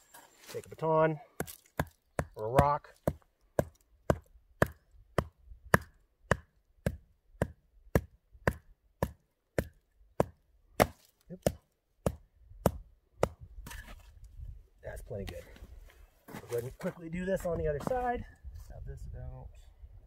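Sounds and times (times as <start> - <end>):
baton hammering wooden stake: 1.3 - 13.8.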